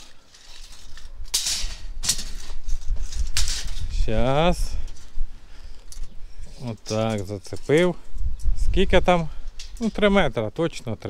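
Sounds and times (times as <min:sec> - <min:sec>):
tape measure rattling on concrete: 0:00.0 - 0:04.1.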